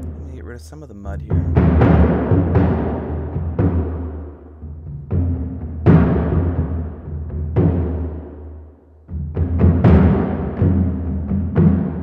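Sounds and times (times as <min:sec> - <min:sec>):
deep drum strokes: 0:00.0 - 0:08.3.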